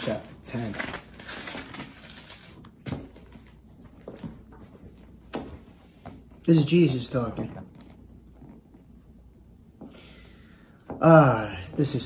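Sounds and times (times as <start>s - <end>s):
pages rustling: 0.0s - 4.4s.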